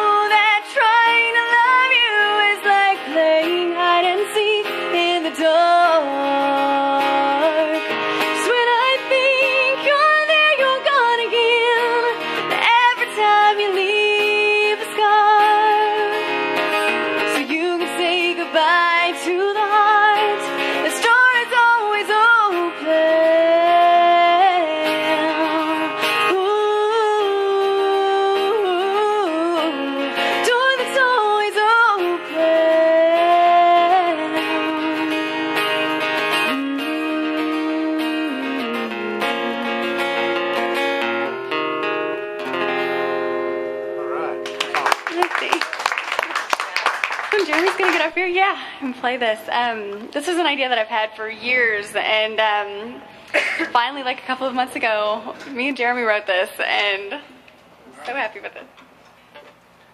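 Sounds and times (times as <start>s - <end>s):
woman singing: 0.0s - 40.0s, 47.3s - 53.0s
acoustic guitar: 0.0s - 59.9s.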